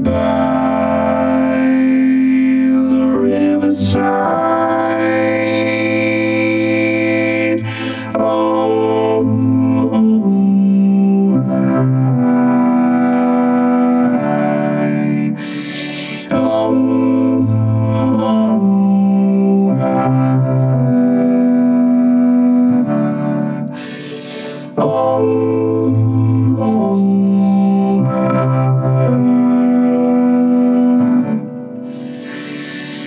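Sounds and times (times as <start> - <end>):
synthesizer chords: 0.0 - 33.0.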